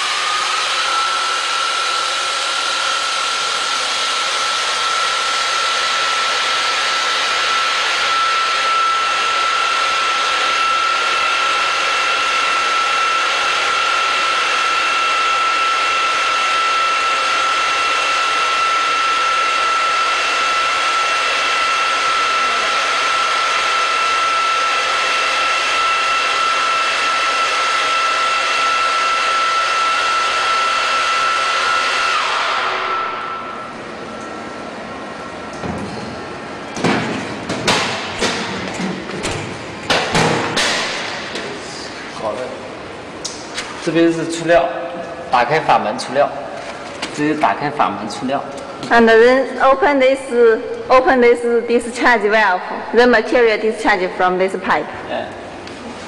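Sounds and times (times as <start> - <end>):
high machine whine: 0.0 - 56.0
higher machine whine: 0.0 - 56.0
loud steady machine noise: 0.0 - 56.0.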